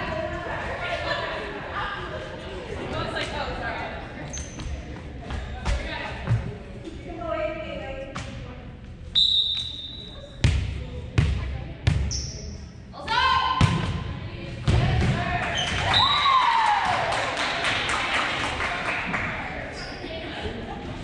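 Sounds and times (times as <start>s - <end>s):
referee's whistle: 9.2s - 10.2s
cheering: 15.7s - 19.3s.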